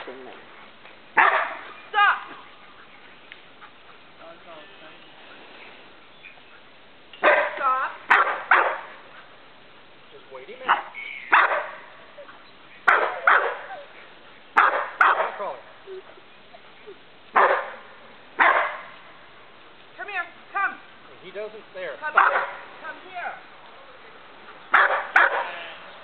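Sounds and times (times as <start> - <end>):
dog barking: 1.2 - 1.7, 7.2 - 9.0, 10.7 - 11.9, 12.9 - 13.8, 14.6 - 15.5, 17.4 - 17.8, 18.4 - 18.9, 22.2 - 22.7, 24.7 - 25.6.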